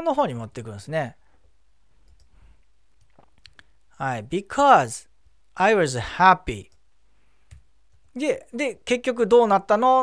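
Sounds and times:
computer mouse clicks: 2.0 - 2.3, 2.9 - 3.7, 7.5 - 8.0.

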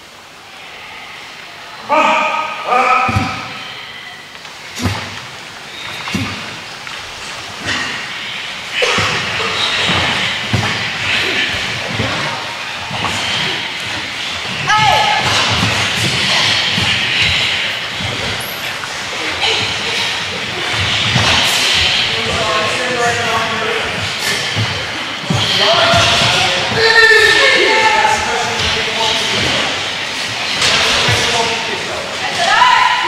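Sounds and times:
din of voices: 1.7 - 33.0
sharp shouts: 1.8 - 3.5, 14.6 - 17.6, 32.2 - 33.0
feet stamping on wooden floor: 4.8 - 7.9, 8.8 - 27.0.

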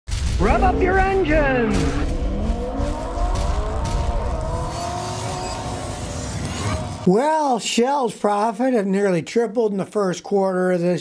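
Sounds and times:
deep rumble: 0.1 - 7.1
racing car engine revving: 0.4 - 7.1.

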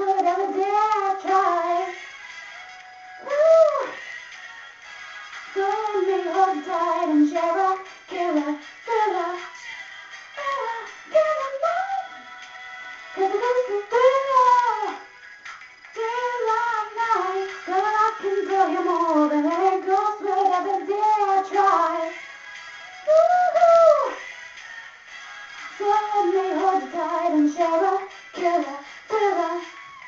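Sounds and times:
woman singing wordless phrases: 0.0 - 2.0, 3.2 - 4.0, 5.5 - 12.3, 13.2 - 15.0, 16.0 - 22.2, 23.1 - 24.2, 25.8 - 29.8.

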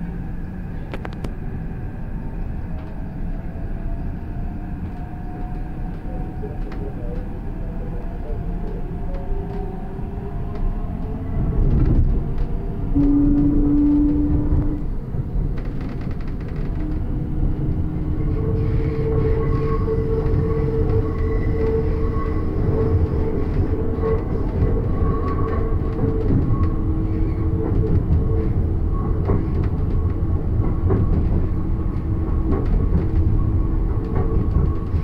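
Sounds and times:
train wheels rumbling on rail: 0.0 - 35.0.

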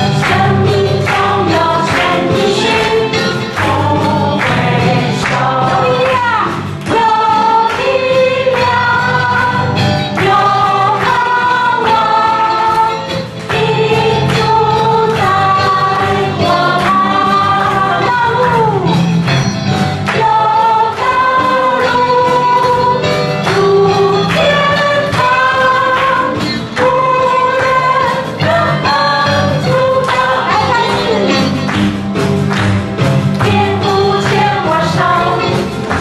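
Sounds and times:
band with steady bass and beat: 0.0 - 36.0
group of voices singing: 0.0 - 36.0.

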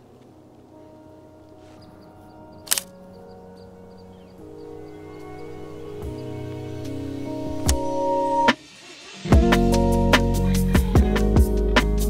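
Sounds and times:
background music held notes: 0.0 - 12.0
camera shutter click: 2.7 - 2.9.

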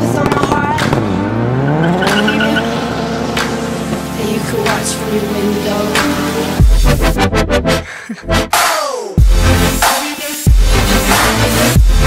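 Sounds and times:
car engine revving: 0.0 - 7.2.

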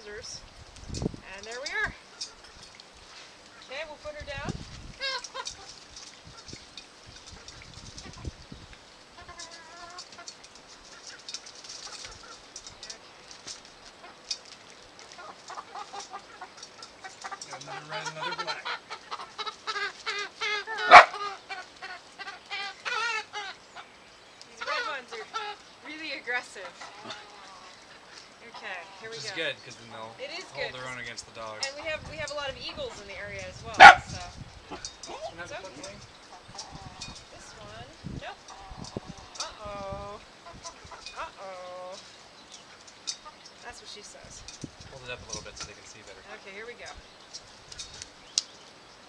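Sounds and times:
hens clucking and squawking: 9.0 - 13.1, 15.0 - 23.9, 24.5 - 29.5, 31.7 - 42.0.

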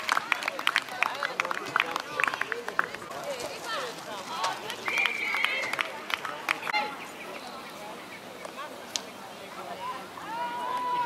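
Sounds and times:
people shouting: 10.2 - 11.0.

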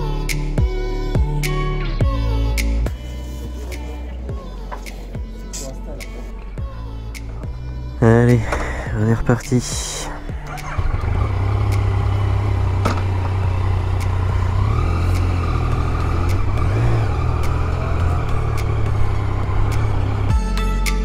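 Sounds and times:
motorcycle engine running: 10.2 - 20.5.

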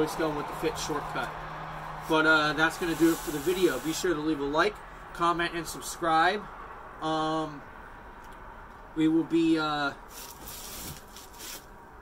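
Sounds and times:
faint rustling and rubbing: 2.8 - 4.0, 10.1 - 11.7.

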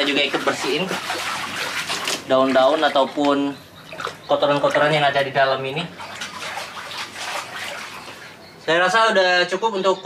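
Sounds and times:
water splashing in plastic basin: 0.0 - 8.4.

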